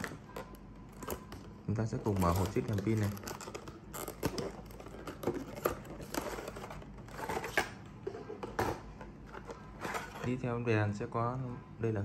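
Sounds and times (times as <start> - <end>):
plastic bag crinkling: 2.0 - 7.6.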